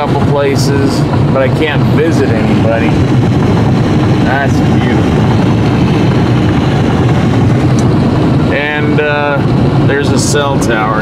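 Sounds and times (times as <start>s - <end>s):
man talking: 0.0s - 3.0s, 4.2s - 5.2s, 8.5s - 11.0s
car road and engine noise: 0.0s - 11.0s.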